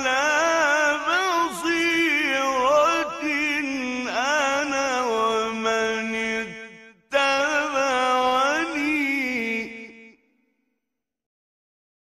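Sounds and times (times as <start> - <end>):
person chanting: 0.0 - 10.2.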